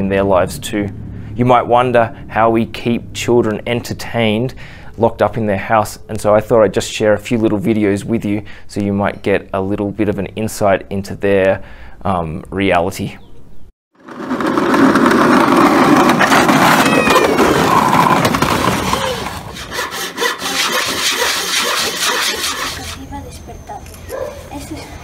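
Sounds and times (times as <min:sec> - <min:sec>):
loud rough rumbling noise: 0:00.0 - 0:04.0, 0:14.0 - 0:19.8
children's voices: 0:16.6 - 0:19.5, 0:20.2 - 0:21.0, 0:24.5 - 0:25.0.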